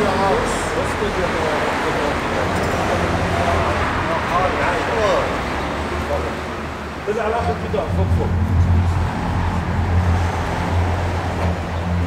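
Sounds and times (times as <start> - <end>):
people talking: 0.0 - 6.4, 7.0 - 9.2
low traffic hum: 0.0 - 12.0.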